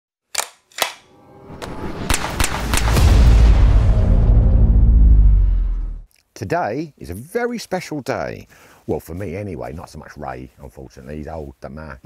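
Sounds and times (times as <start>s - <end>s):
deep bass swell: 1.2s - 6.1s
gunshots: 1.6s - 4.1s.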